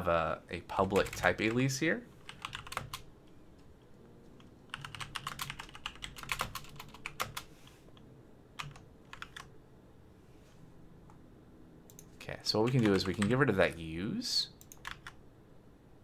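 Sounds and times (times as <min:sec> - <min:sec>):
typing on computer keyboard: 0:00.9 - 0:01.6, 0:02.3 - 0:03.0, 0:04.7 - 0:07.5, 0:08.6 - 0:09.5, 0:12.7 - 0:13.4, 0:14.6 - 0:15.2.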